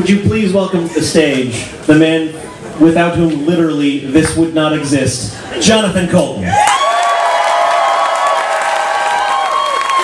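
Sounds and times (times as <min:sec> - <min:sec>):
audience applauding and cheering: 0:06.5 - 0:10.0
long held whoops: 0:06.5 - 0:10.0.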